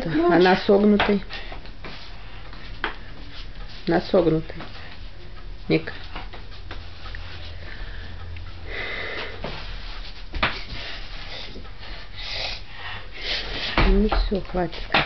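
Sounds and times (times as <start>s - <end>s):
steady low hum: 0.0s - 15.0s
child sniffing and breathing: 7.5s - 9.9s, 10.6s - 13.8s.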